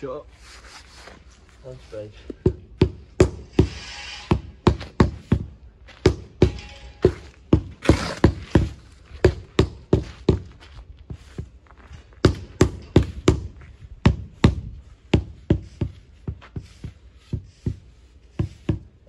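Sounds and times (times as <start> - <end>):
shovel scraping mortar: 3.3 - 5.4, 6.2 - 9.2.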